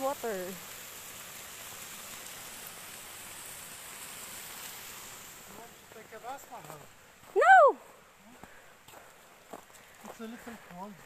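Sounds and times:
stream running over rocks: 0:00.0 - 0:11.0.

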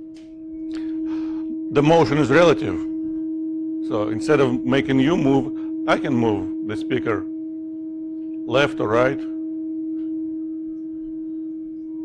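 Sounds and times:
steady pure tone from loudspeakers: 0:00.8 - 0:02.8, 0:03.9 - 0:07.2, 0:08.5 - 0:09.3.

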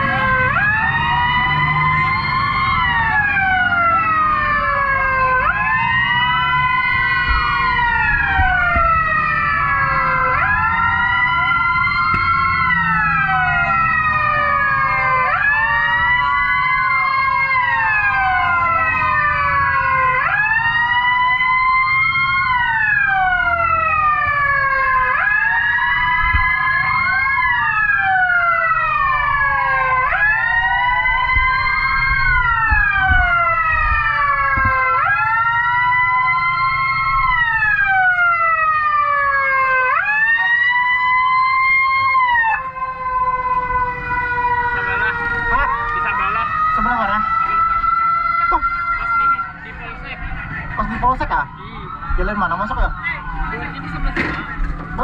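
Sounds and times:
sirens wailing: 0:00.0 - 0:55.0.

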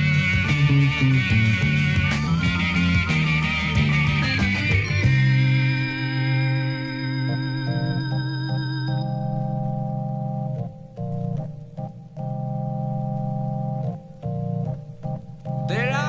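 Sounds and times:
organ chords with vibrato: 0:00.0 - 0:16.0.

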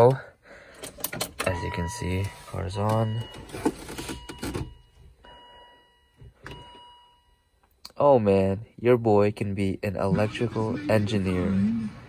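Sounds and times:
faint electronic chime: 0:01.5 - 0:07.6.

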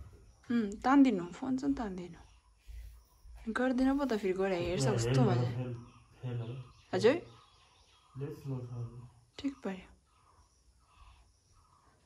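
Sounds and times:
person talking: 0:04.1 - 0:05.6.

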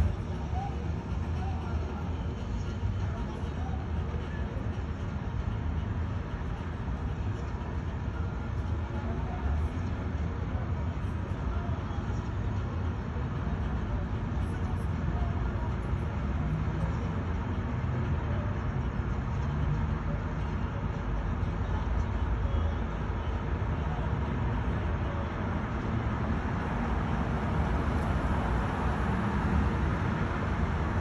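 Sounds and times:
low rumble of street traffic: 0:00.0 - 0:31.0.

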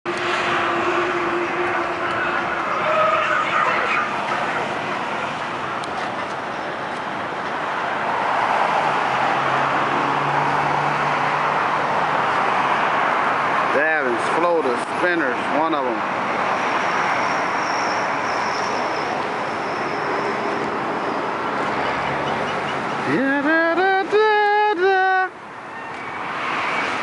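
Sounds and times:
road traffic rushing: 0:00.1 - 0:27.0.

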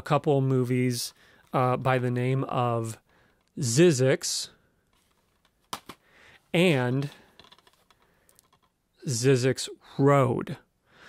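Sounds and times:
plastic case clicks and taps: 0:05.6 - 0:06.0.

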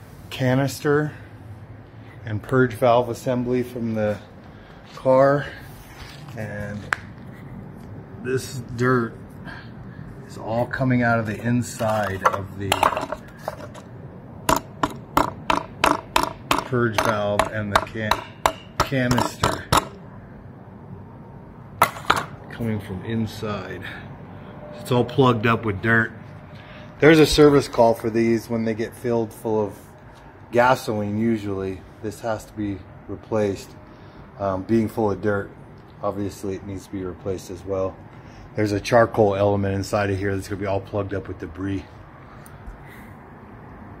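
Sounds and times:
steady low background noise: 0:00.0 - 0:44.0
plastic part knocked on concrete: 0:14.5 - 0:18.0, 0:21.8 - 0:22.3.

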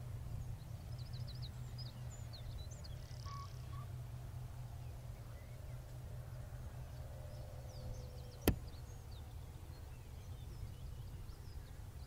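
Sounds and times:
bird chirps: 0:00.9 - 0:03.9.

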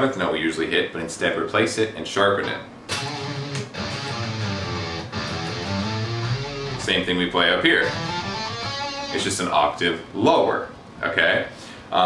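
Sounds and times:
electric guitar single notes: 0:02.9 - 0:09.4.

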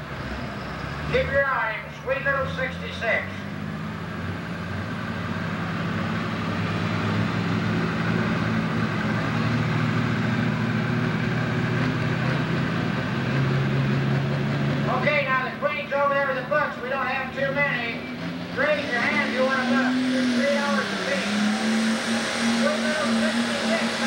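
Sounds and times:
diesel engine running: 0:00.0 - 0:24.0.

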